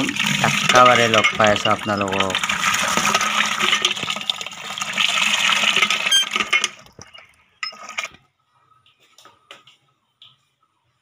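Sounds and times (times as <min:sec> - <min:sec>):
water pouring into plastic bucket: 0:00.0 - 0:07.2.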